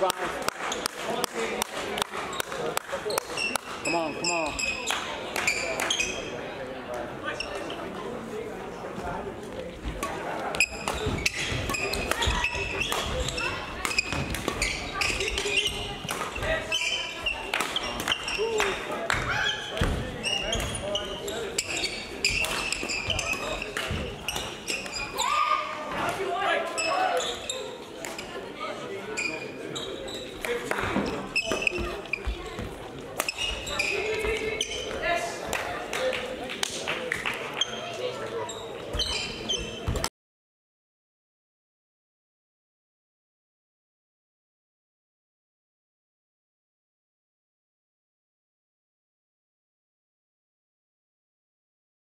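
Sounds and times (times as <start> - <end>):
voices of players and spectators: 0.0 - 40.1
shoes squeaking on court floor: 2.2 - 6.4, 9.7 - 35.2, 37.6 - 40.1.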